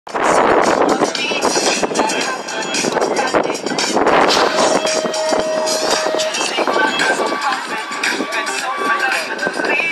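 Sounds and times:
spectators shouting and cheering: 4.2 - 9.9
steady beep: 4.3 - 7.7.

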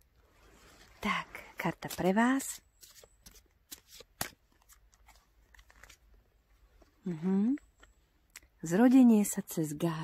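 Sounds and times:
cards clicking and snapping: 2.9 - 6.0.

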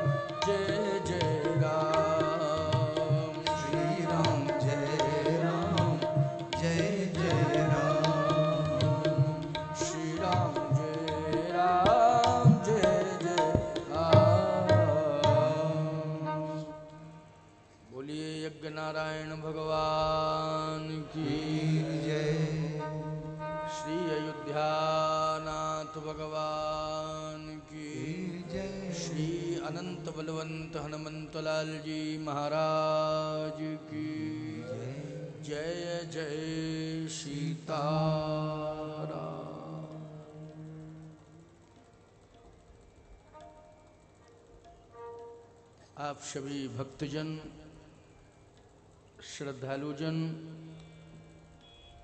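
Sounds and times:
person chanting: 0.0 - 41.6.

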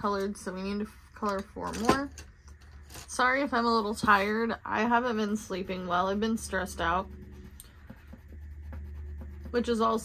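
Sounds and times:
low steady hum: 0.0 - 10.0
pencil scratching on paper: 3.6 - 10.0.

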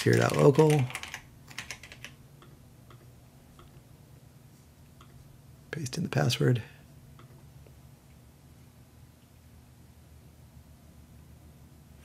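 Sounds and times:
computer keyboard typing: 0.0 - 2.2.

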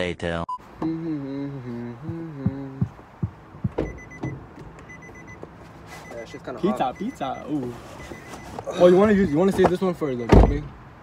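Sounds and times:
car door knocks and clunk: 2.1 - 5.6, 9.0 - 10.8
door-open warning chime beeping: 3.7 - 5.4, 6.0 - 9.6.

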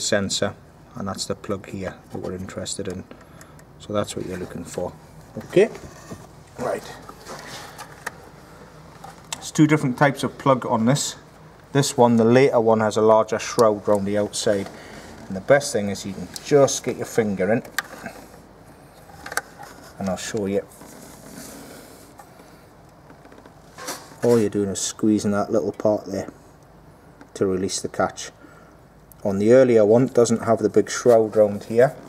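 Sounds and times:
low steady hum: 0.0 - 32.0.

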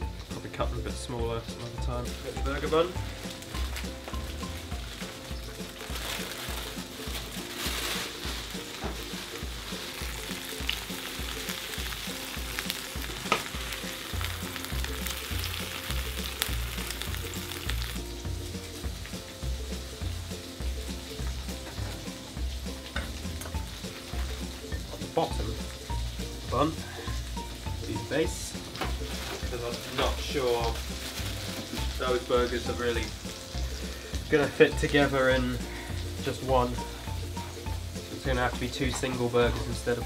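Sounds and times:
burger patties sizzling in a pan: 0.0 - 40.0.

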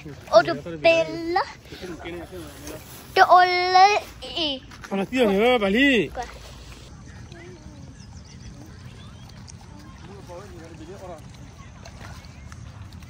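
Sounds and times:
faint distant voices: 4.9 - 13.0.

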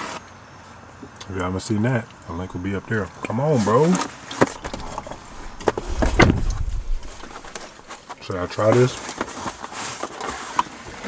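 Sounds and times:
low bumping rumble: 4.5 - 7.9.

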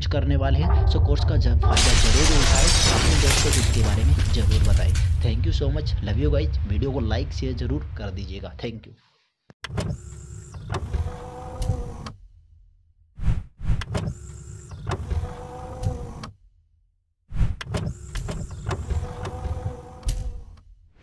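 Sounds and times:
mechanical whir: 9.7 - 12.2, 13.7 - 16.4, 17.4 - 20.6.

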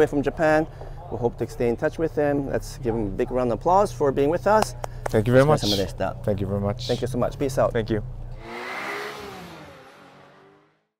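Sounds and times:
engine revving effect: 8.3 - 10.9.

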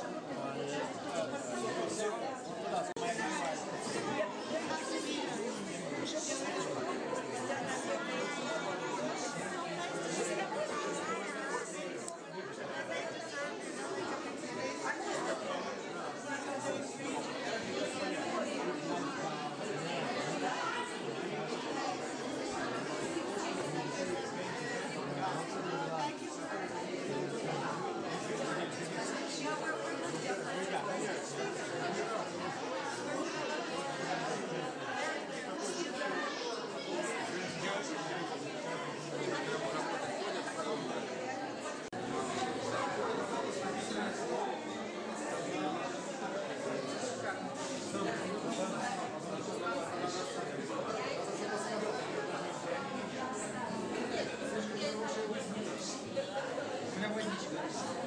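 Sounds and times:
crowd chatter: 0.0 - 58.0.

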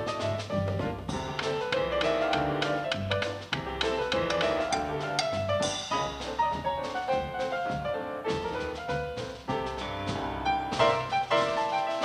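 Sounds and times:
drum kit keeping time: 0.0 - 12.0
grand piano jazz: 0.0 - 12.0.

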